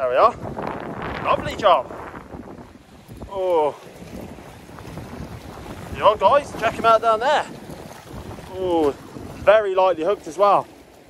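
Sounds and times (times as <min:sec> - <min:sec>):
sea water washing over rocks: 0:00.0 - 0:11.0
wind buffeting microphone: 0:00.0 - 0:11.0.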